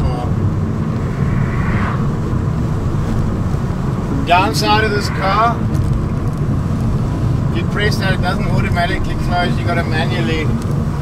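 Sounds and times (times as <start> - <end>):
road and wind noise inside car: 0.0 - 11.0
passing car hiss: 0.6 - 5.8.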